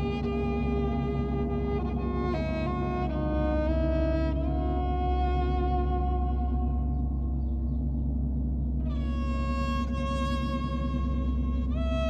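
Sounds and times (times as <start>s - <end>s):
bowed violin note: 0.0s - 7.7s, 8.8s - 12.0s
low gong hum: 0.0s - 12.0s.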